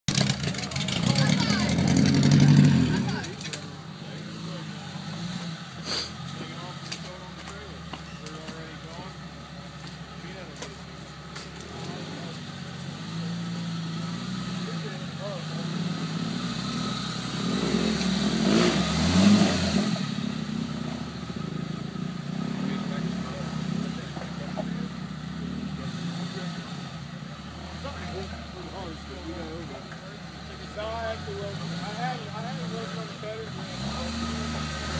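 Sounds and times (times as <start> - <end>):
engine revving: 0.1 - 9.2, 10.3 - 34.9.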